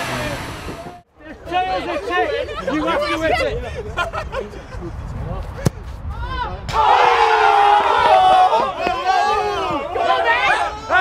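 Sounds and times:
group shouting and cheering: 0:06.2 - 0:11.0.

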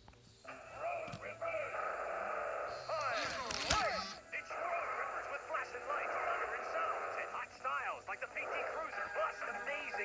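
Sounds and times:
excited voices from television: 0:00.5 - 0:10.0.

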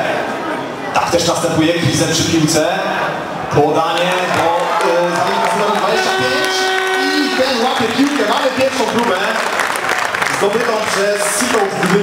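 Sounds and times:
man commentating: 0:01.0 - 0:09.6, 0:10.3 - 0:12.0.

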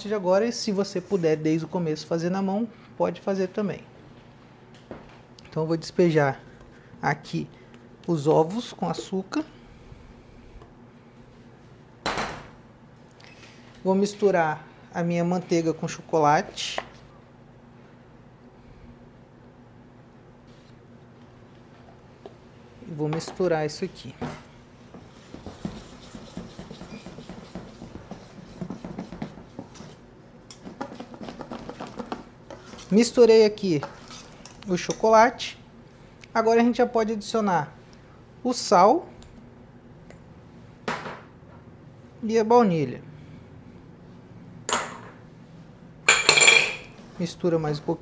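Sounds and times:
utensil scraping metal bowl: 0:25.5 - 0:29.2.

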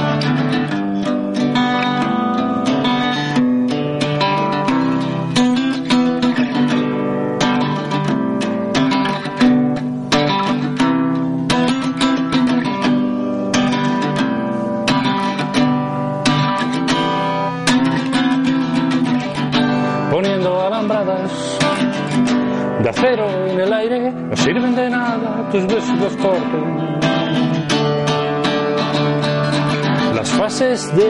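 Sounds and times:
strummed acoustic guitar: 0:00.0 - 0:31.0
person singing: 0:13.7 - 0:31.0.

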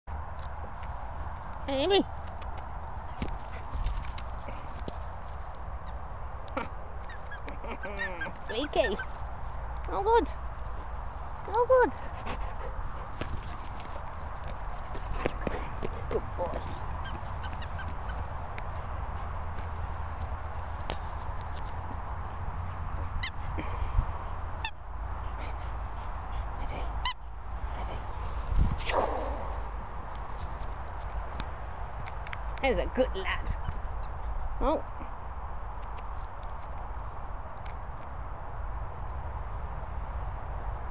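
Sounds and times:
squeaky toy squeaks: 0:07.0 - 0:09.2, 0:17.0 - 0:18.2, 0:23.2 - 0:23.4
wind rumble on microphone: 0:27.4 - 0:32.6.

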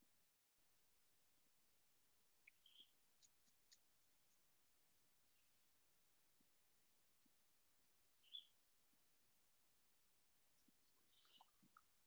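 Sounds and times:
faint high-pitched chirps: 0:02.3 - 0:06.5, 0:08.0 - 0:08.7, 0:10.4 - 0:12.0.

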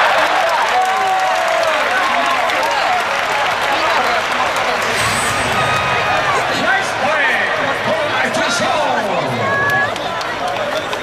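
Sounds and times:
stadium crowd applauding: 0:00.0 - 0:04.9, 0:06.6 - 0:11.0.

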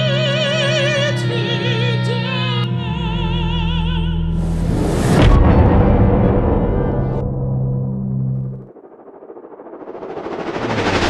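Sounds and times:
stuttering noise swell: 0:04.4 - 0:11.0.

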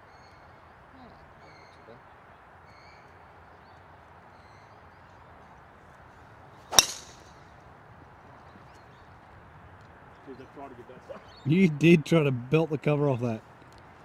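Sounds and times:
faint background noise: 0:00.0 - 0:14.0
golf club striking ball: 0:06.7 - 0:07.3.

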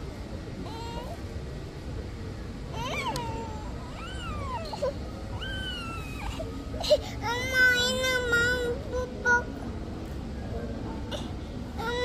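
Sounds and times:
toddler crying: 0:02.7 - 0:08.8.

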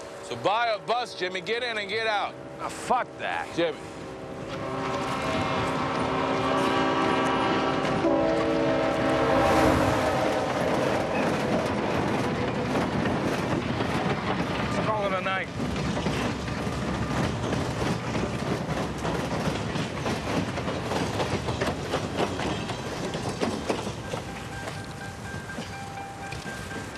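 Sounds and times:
rail cars clickety-clack: 0:00.0 - 0:26.9
locomotive horn chord: 0:02.3 - 0:10.7.

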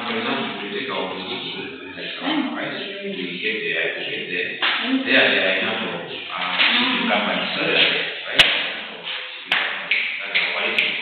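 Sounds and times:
indistinct talking: 0:00.0 - 0:11.0
sharp knock: 0:07.8 - 0:11.0.

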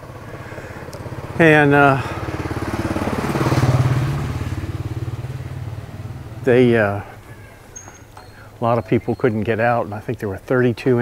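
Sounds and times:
motorcycle engine passing by: 0:00.0 - 0:09.2.

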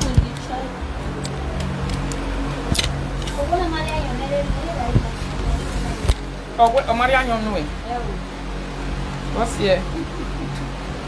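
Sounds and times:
indistinct voices: 0:00.0 - 0:08.6
background music: 0:00.0 - 0:11.0.

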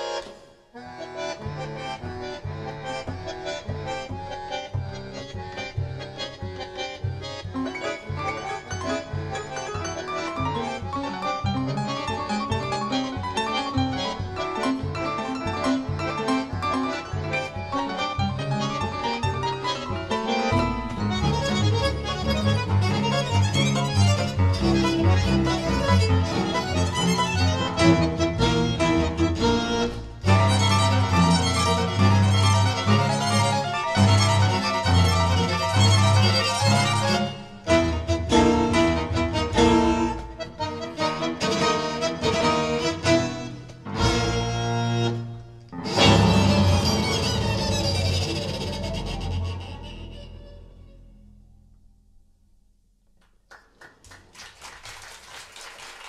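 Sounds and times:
bandoneon: 0:00.0 - 0:51.7
double bass line: 0:00.8 - 0:53.0
piano: 0:01.4 - 0:51.6
violin and cello bowing: 0:21.2 - 0:40.2, 0:45.8 - 0:51.1.

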